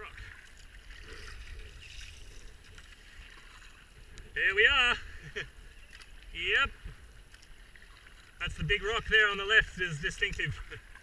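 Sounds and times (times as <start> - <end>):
paddle splashing in water: 0.0 - 4.1, 5.6 - 11.0
water washing along hull: 0.0 - 11.0.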